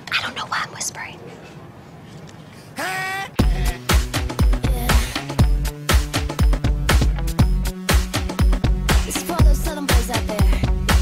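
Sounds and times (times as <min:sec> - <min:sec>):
woman whispering: 0:00.0 - 0:01.3.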